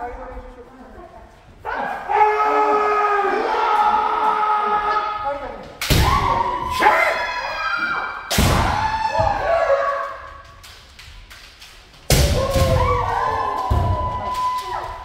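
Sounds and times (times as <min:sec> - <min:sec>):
long echoing shouts: 0:01.6 - 0:05.4, 0:06.0 - 0:10.5, 0:12.2 - 0:15.0
bamboo sword strikes: 0:12.1 - 0:12.8.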